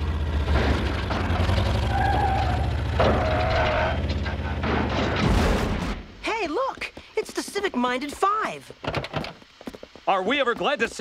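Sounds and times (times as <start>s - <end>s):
loud cartoon crash: 3.0s - 6.1s.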